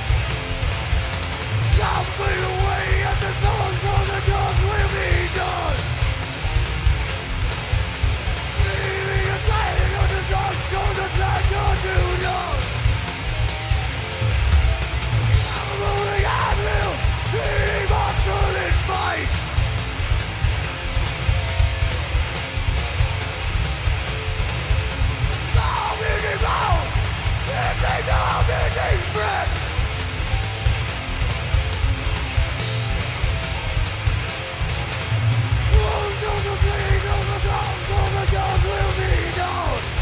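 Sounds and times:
heavy metal band playing: 0:00.0 - 0:40.0.

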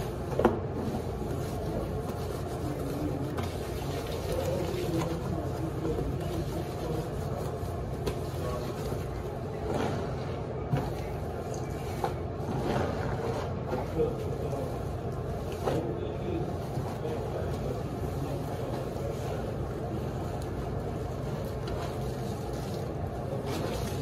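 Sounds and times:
wet fabric scrubbed by hand: 0:00.0 - 0:09.2, 0:16.5 - 0:24.0
steady low hum: 0:00.0 - 0:24.0.

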